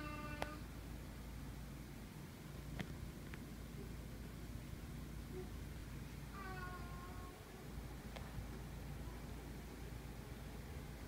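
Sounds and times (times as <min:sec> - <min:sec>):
cat meowing: 0:06.3 - 0:07.4.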